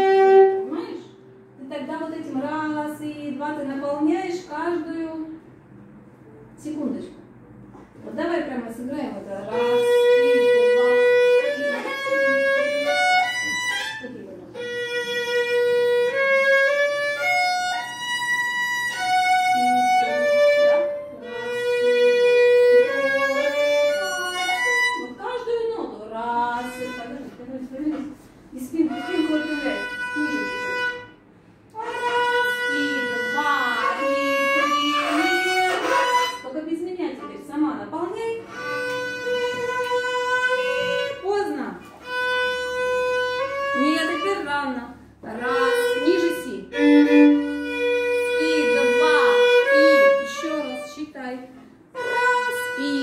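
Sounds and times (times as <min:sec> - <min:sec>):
violin playing: 0:00.0 - 0:00.8, 0:09.4 - 0:25.5, 0:26.6 - 0:27.4, 0:28.7 - 0:36.6, 0:38.4 - 0:44.6, 0:45.3 - 0:51.1, 0:51.8 - 0:53.0
woman's voice: 0:00.6 - 0:05.4, 0:06.5 - 0:07.3, 0:08.0 - 0:14.6, 0:22.9 - 0:30.7, 0:31.8 - 0:38.6, 0:43.8 - 0:47.0, 0:48.2 - 0:53.0.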